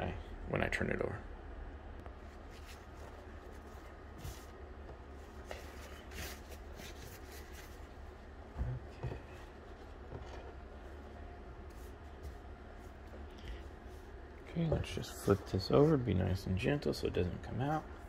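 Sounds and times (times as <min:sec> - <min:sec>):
low room hum: 0:00.0 - 0:18.0
towel rustling: 0:02.1 - 0:08.2, 0:08.9 - 0:16.1.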